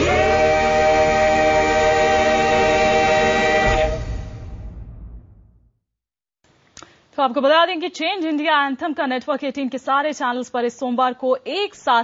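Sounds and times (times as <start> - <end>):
choir holding a chord: 0.0 - 4.6.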